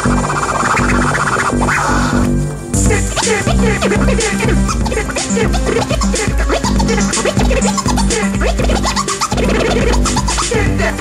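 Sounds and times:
hip-hop beat with bass pulses: 0:00.0 - 0:11.0
turntable scratching: 0:00.0 - 0:11.0.

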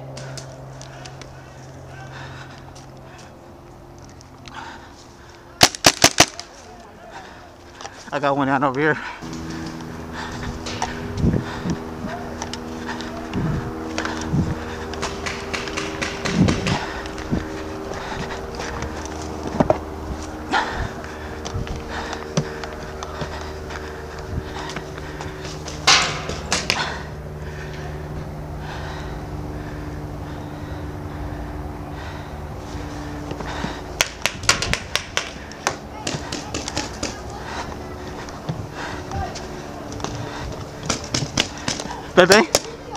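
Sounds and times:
low hum of held tones: 0:00.0 - 0:05.6, 0:06.4 - 0:36.0
footsteps on grass and dirt: 0:07.6 - 0:26.6, 0:35.4 - 0:42.9.

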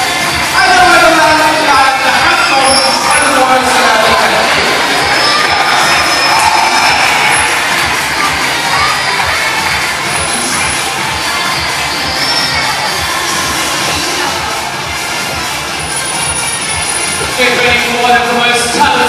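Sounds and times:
crowd cheering and shouting: 0:00.0 - 0:19.0.

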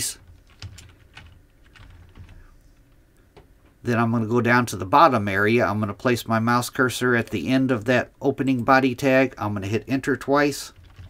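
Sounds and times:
computer keyboard typing: 0:00.2 - 0:02.4, 0:10.7 - 0:11.0.

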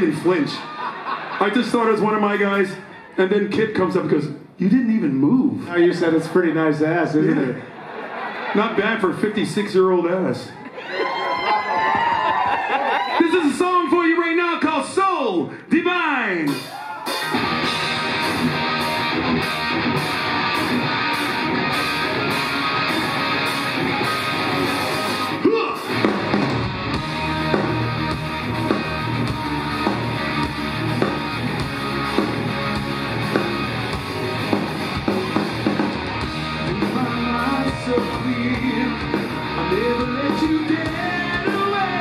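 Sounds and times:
hard-hitting drums: 0:16.4 - 0:42.0
rock band playing: 0:16.4 - 0:42.0.

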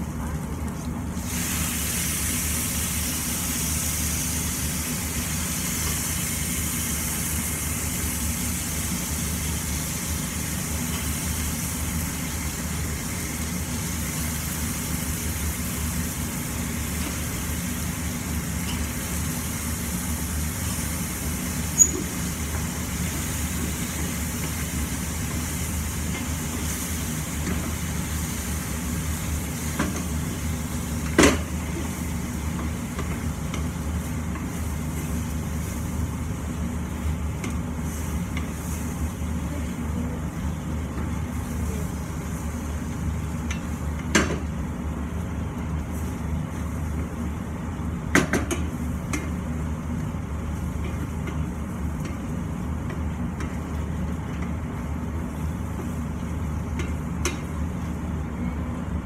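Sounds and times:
frying pan sizzle: 0:01.1 - 0:59.0.

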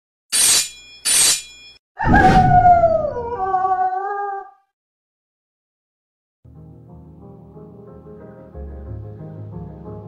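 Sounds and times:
scratchy claw slash swipes: 0:00.3 - 0:01.5.

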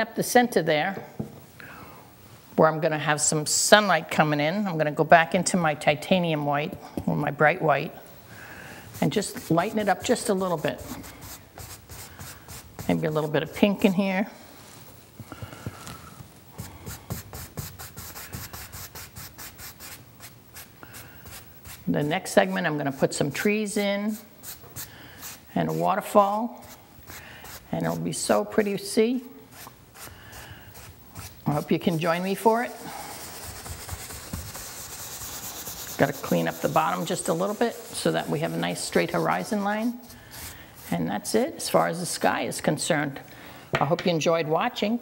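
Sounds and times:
paintbrush rubbing on canvas: 0:08.9 - 0:15.0, 0:15.7 - 0:22.1, 0:29.5 - 0:41.8.

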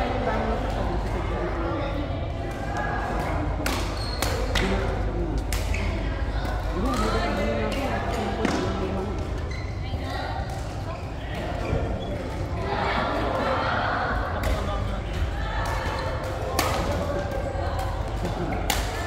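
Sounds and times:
people talking in a large hall: 0:00.0 - 0:19.0.

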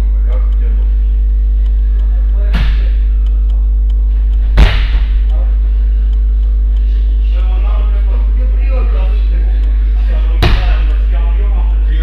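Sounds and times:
low electrical hum: 0:00.0 - 0:12.0
bodies thudding on wrestling mat: 0:04.5 - 0:05.2.

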